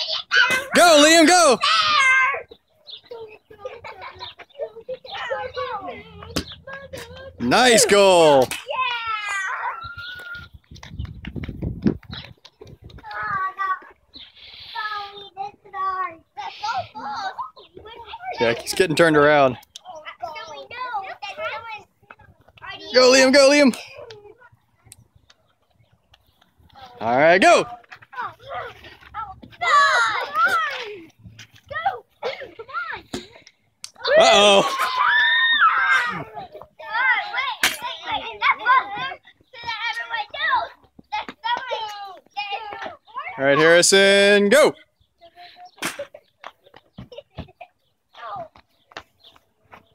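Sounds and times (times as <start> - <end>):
children shouting and chattering: 0.0 - 49.9.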